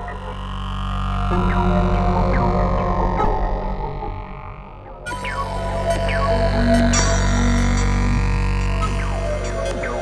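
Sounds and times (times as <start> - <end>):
buzzing low synthesizer drone: 0.0 - 10.0.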